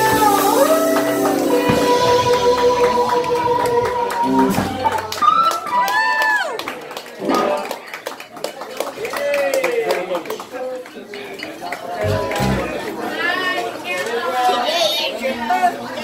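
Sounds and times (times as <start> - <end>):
audience voices and shouts: 0.0 - 7.9, 8.8 - 16.0
electric guitar phrases: 12.0 - 12.8
low bass notes: 12.0 - 12.9.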